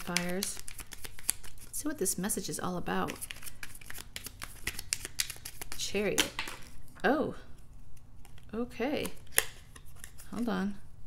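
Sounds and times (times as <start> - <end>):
cards being shuffled: 0.0 - 2.0, 2.9 - 10.6.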